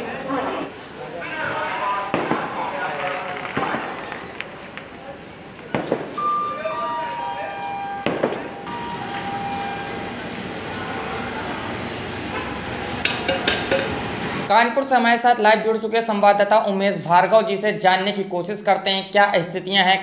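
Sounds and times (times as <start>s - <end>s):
distant voices: 0.0s - 17.4s
sharp knocks and clanks: 2.1s - 6.4s, 8.0s - 9.4s
held tones: 3.4s - 11.8s.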